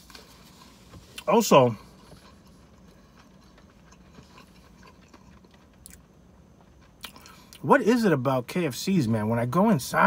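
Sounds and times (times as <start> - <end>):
faint chewing: 0.0 - 7.6.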